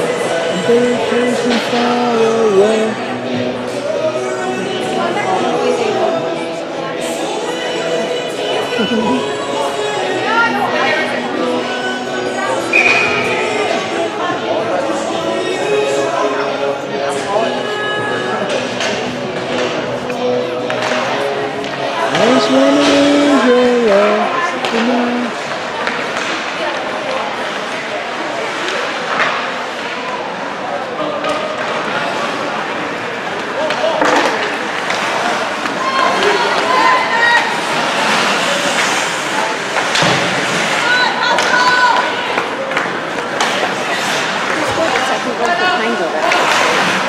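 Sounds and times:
skates scraping ice: 17.8s - 47.0s
sticks and puck hitting boards: 33.4s - 36.7s.

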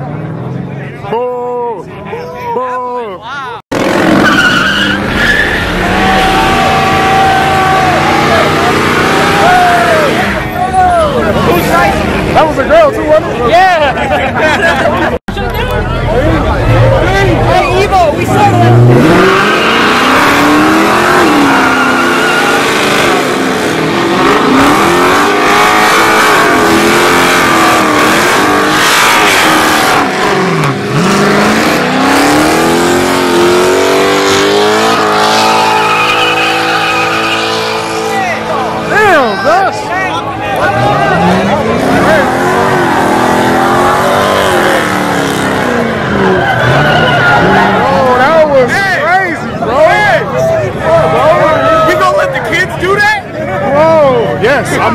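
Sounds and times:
car engine revving: 3.7s - 13.4s, 15.7s - 48.9s
tyres squealing: 4.1s - 11.8s, 18.3s - 22.9s, 34.7s - 38.5s
crowd shouting: 4.8s - 12.0s, 33.8s - 54.9s.

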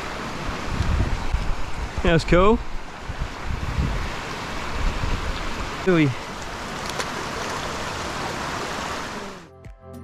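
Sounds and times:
creek flowing over rocks: 0.0s - 9.5s.

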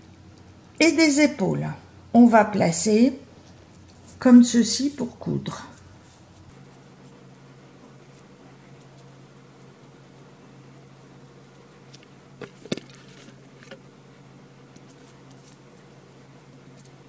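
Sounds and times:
paper clicks and rustles on table: 11.9s - 13.8s.

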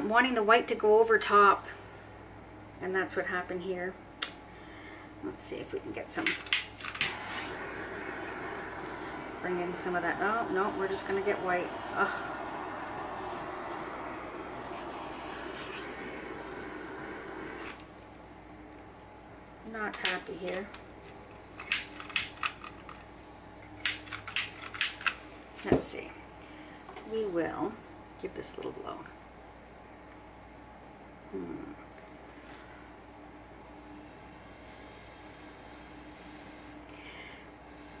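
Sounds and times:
torch igniter click: 6.2s - 7.8s, 20.0s - 20.8s, 21.6s - 22.6s, 23.8s - 25.2s
torch flame hissing: 6.2s - 17.9s, 20.0s - 20.7s, 21.6s - 22.6s, 23.8s - 25.2s, 34.4s - 38.0s.

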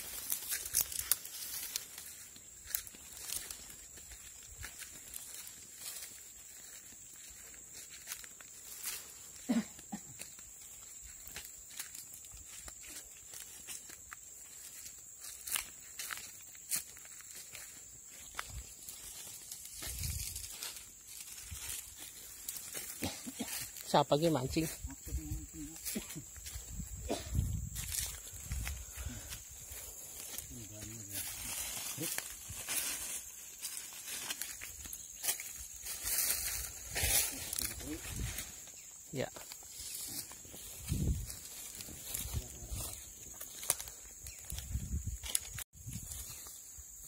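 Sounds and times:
footsteps on dry leaves: 0.0s - 47.0s.

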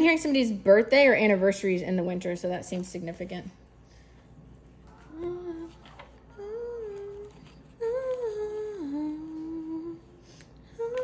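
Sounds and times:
woman humming a slow tune: 4.9s - 11.0s.

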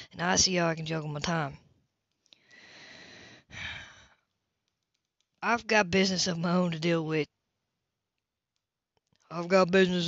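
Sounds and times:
person breathing close to microphone: 2.3s - 4.3s.

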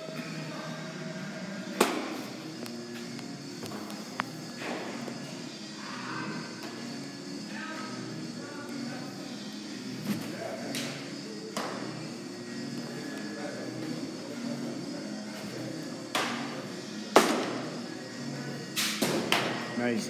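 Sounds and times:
baseballs being hit and caught: 1.7s - 2.2s, 10.1s - 11.8s.

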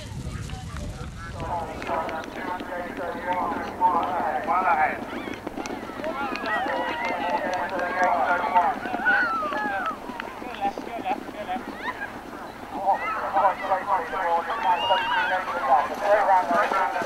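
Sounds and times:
horses galloping on grass: 0.0s - 17.0s
voices calling out: 0.6s - 17.0s.

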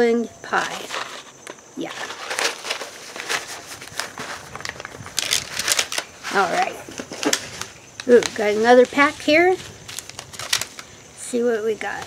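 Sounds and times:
paper and seed packets rustling: 0.6s - 12.0s.

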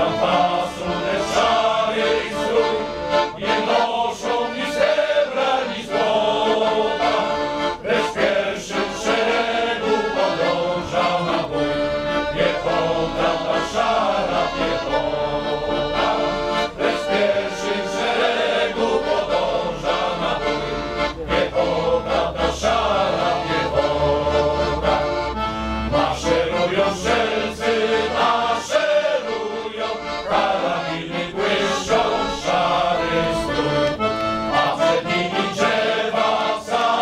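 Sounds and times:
accordion: 0.0s - 37.0s
men's choir singing: 0.0s - 37.0s.

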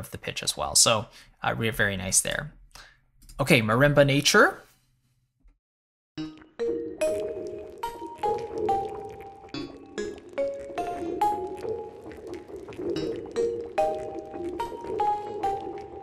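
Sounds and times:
watery texture: 6.2s - 16.0s.

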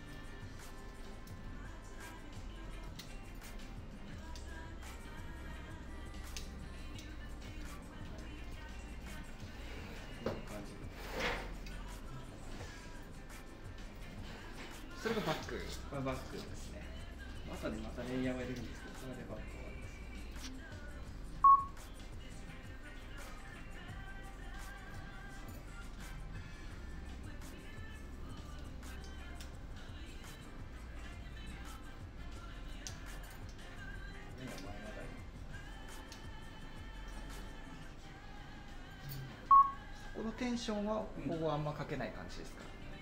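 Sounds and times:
faint background music: 0.0s - 43.0s
loud electronic beep: 21.4s - 21.7s.

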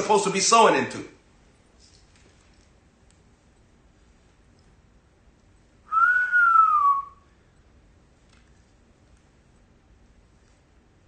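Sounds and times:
man whistling a gliding note: 5.9s - 7.3s.

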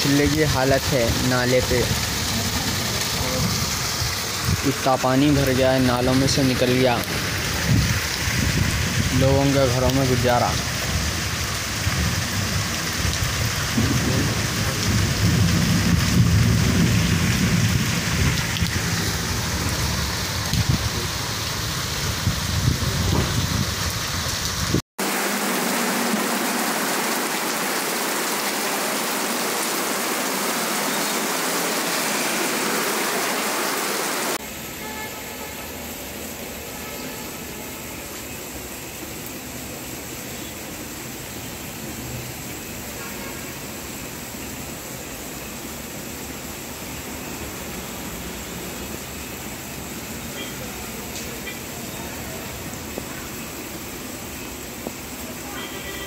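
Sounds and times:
heavy rain on floodwater: 0.0s - 56.0s
heavy rain on street: 0.0s - 56.0s.

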